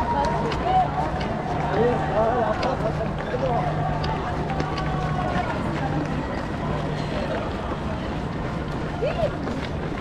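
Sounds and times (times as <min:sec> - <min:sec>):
footsteps on cobblestones: 0:00.0 - 0:10.0
voices of spectators: 0:00.0 - 0:10.0.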